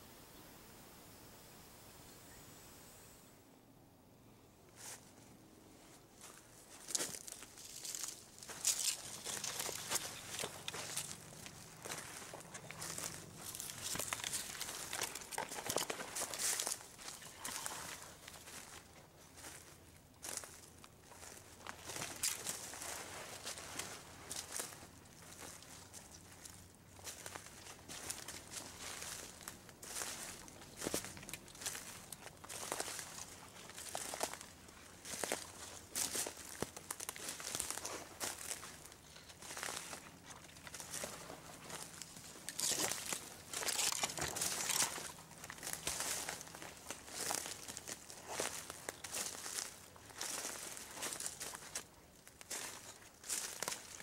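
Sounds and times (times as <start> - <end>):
rustling of undergrowth: 4.7 - 54.0
footsteps crunching through dry leaves: 6.2 - 54.0.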